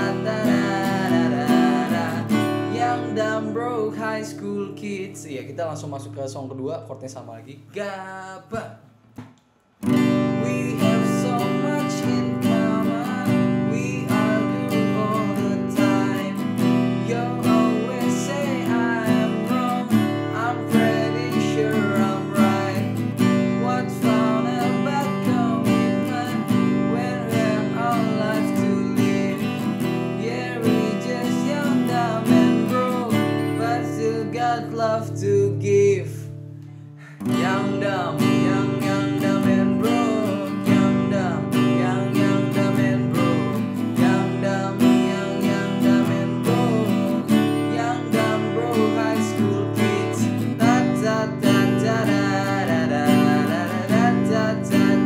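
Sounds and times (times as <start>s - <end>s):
acoustic guitar strumming: 0.0s - 6.9s, 7.6s - 55.0s
man singing: 0.0s - 8.9s, 9.9s - 36.4s, 37.0s - 55.0s.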